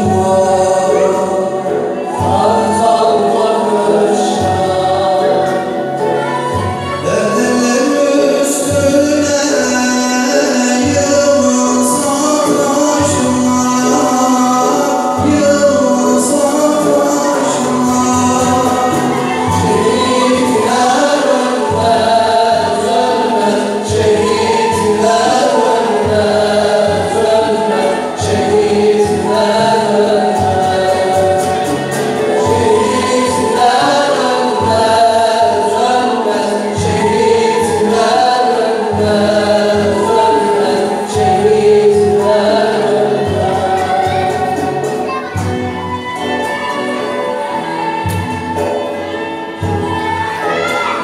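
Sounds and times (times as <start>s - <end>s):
male choir singing hymn: 0.0s - 51.0s.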